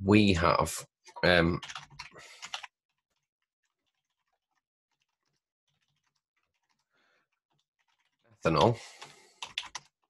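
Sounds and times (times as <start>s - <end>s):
faint laptop keyboard typing: 1.1s - 10.0s.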